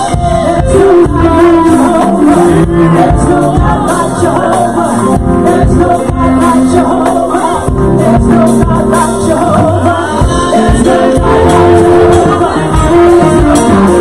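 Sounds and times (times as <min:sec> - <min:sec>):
instrumental accompaniment with beat: 0:00.0 - 0:14.0
women singing gospel song: 0:00.0 - 0:14.0.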